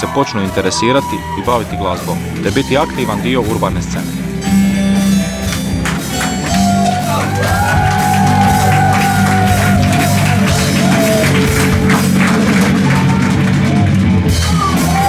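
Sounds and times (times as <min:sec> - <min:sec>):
rock band playing: 0:00.0 - 0:15.0.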